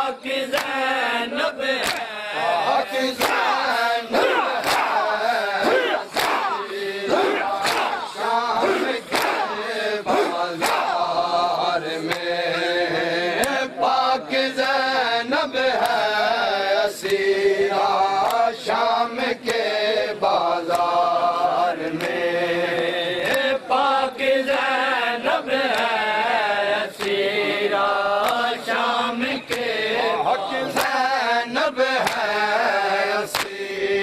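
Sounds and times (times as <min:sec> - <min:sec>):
male voices chanting: 0:00.0 - 0:34.0
hands slapping chests: 0:00.5 - 0:00.8, 0:01.8 - 0:12.4, 0:13.4 - 0:13.7, 0:15.7 - 0:16.0, 0:17.0 - 0:17.3, 0:18.2 - 0:18.4, 0:20.6 - 0:21.1, 0:21.9 - 0:22.2, 0:23.2 - 0:23.6, 0:25.6 - 0:26.0, 0:26.9 - 0:27.2, 0:28.2 - 0:28.6, 0:29.3 - 0:29.7, 0:30.7 - 0:31.1, 0:32.0 - 0:32.4, 0:33.2 - 0:33.7.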